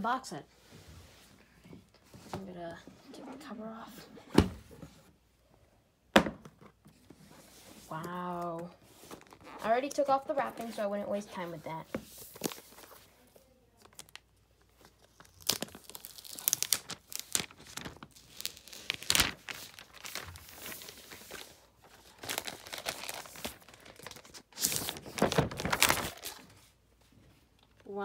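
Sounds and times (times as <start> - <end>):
packaging crinkling and rustling: 12.2 - 26.6.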